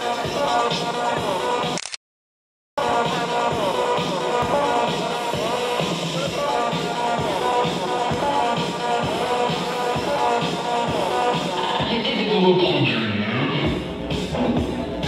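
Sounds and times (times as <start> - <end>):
electro dance music: 0.0 - 1.8, 2.8 - 15.0.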